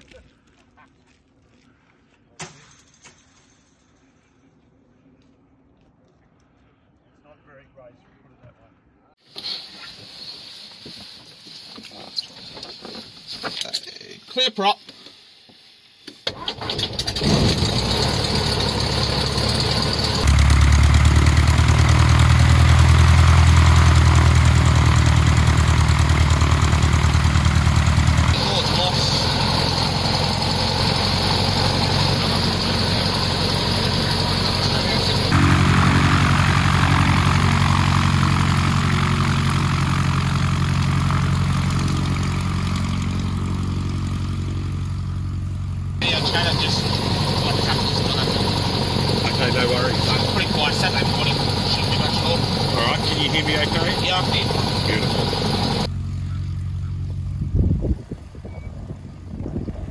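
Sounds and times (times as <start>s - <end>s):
propeller engine starting: 16.2s - 56.8s.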